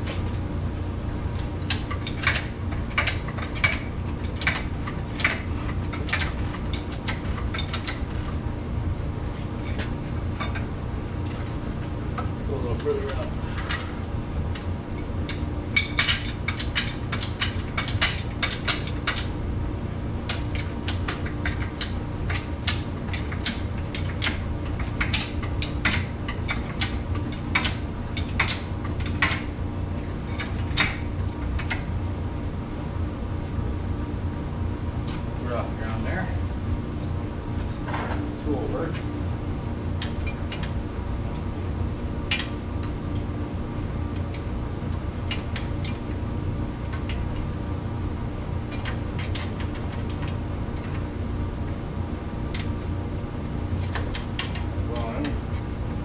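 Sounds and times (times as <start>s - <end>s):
steady low hum: 0.0s - 56.0s.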